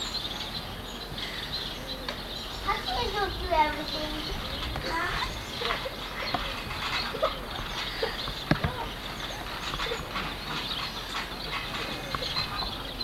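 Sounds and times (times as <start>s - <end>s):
trampoline bouncing: 0.0s - 13.0s
trampoline springs creaking and knocking: 0.0s - 13.0s.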